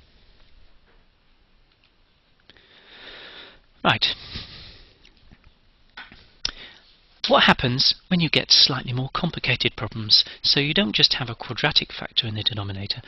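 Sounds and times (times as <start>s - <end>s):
person breathing in: 2.5s - 5.1s, 6.5s - 7.0s.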